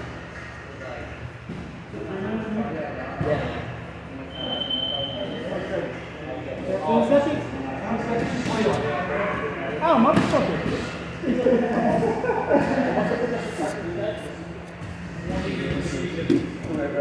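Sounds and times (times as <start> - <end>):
people talking: 0.4 - 17.0.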